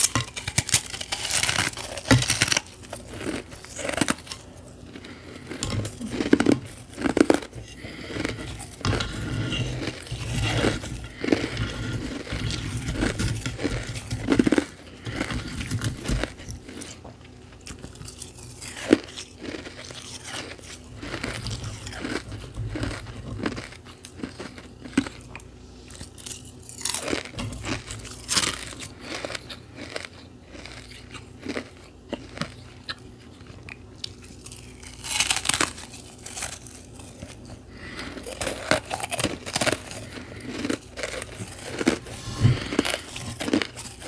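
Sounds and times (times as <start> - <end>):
crunching frozen candy: 0.0 - 44.0.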